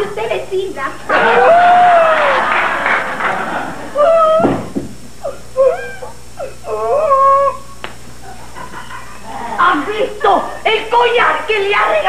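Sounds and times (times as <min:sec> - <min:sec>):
woman whining and whimpering: 0:05.2 - 0:07.7.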